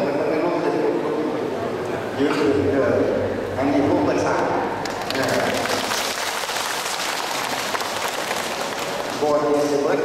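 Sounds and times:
audience applauding: 4.8s - 9.6s.

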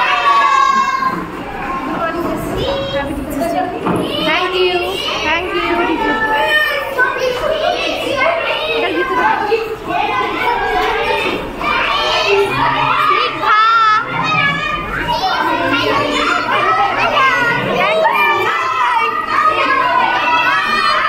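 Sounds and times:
children shouting and chattering: 0.0s - 21.0s.

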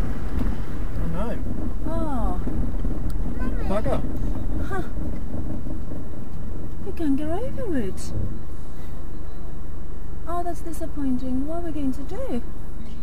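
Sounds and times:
vehicle rumbling on rough track: 0.0s - 13.0s.

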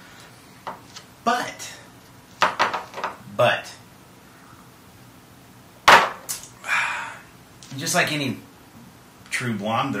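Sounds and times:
breathy exhale: 6.6s - 7.3s.

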